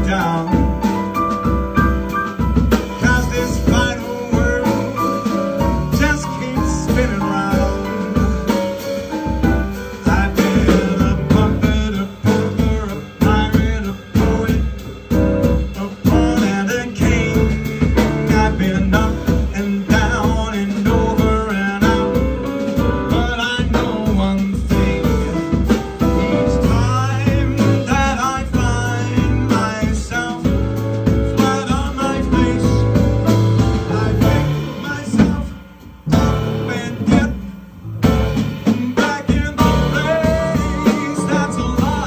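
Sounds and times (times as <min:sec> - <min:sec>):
man singing into microphone: 0:00.0 - 0:01.0, 0:03.0 - 0:05.3, 0:05.9 - 0:08.2, 0:10.0 - 0:14.8, 0:15.5 - 0:30.6, 0:31.2 - 0:33.1, 0:33.8 - 0:37.6, 0:38.6 - 0:42.0
double bass: 0:00.0 - 0:42.0
jazz band playing: 0:00.0 - 0:42.0.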